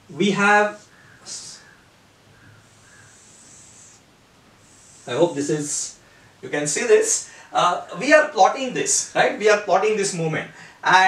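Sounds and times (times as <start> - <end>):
marker scratching on whiteboard: 4.6 - 5.4.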